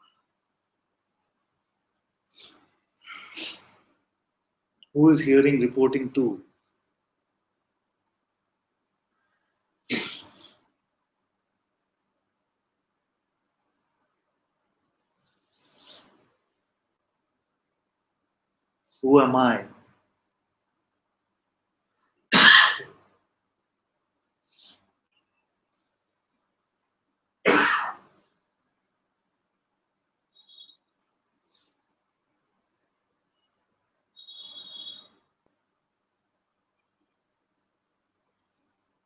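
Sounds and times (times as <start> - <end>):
man coughing: 22.3 - 22.9.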